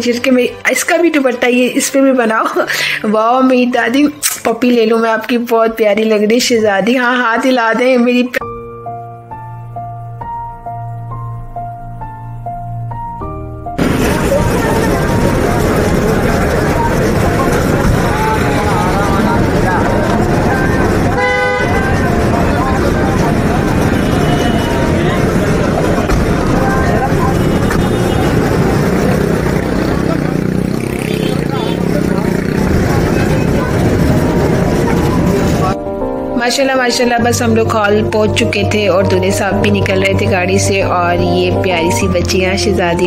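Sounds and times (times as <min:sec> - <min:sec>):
car horn honking: 0:13.8 - 0:28.9, 0:30.8 - 0:32.0
crowd chatter: 0:13.8 - 0:35.8
traffic: 0:13.8 - 0:35.8.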